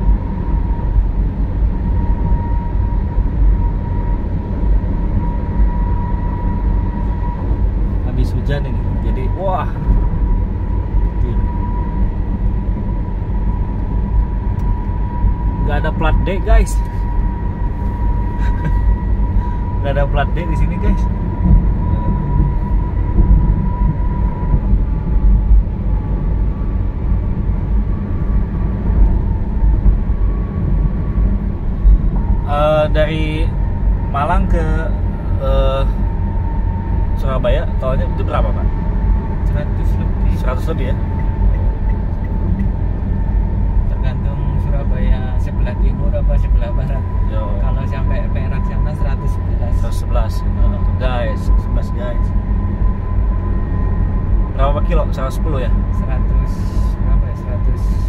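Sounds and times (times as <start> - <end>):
faint high whine: 0.0 - 58.0
road and engine rumble: 0.0 - 58.0.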